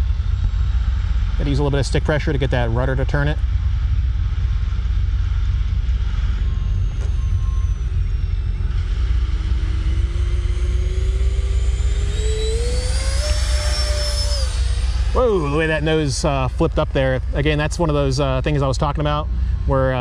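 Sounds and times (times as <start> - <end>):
electric ducted-fan whine: 0.0 - 20.0
steady low rumble: 0.0 - 20.0.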